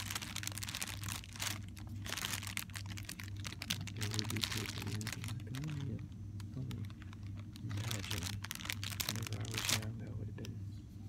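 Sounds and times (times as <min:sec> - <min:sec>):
cellophane crinkling: 0:00.0 - 0:10.5
steady low hum: 0:00.0 - 0:11.0.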